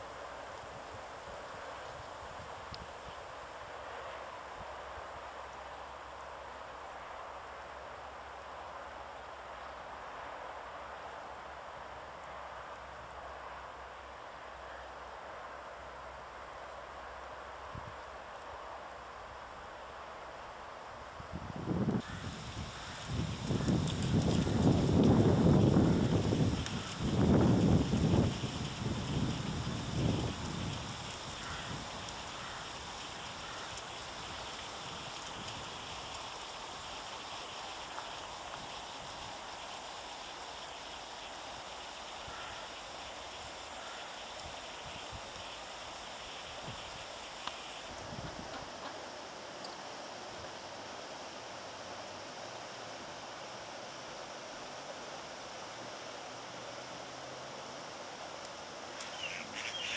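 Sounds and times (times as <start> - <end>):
flowing river water: 0.0 - 21.4, 22.2 - 59.9
wind buffeting microphone: 21.2 - 36.1, 47.9 - 48.7.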